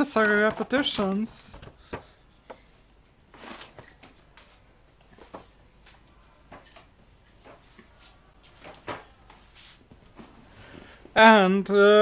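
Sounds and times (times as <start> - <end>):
soft rustles: 1.5 - 11.2.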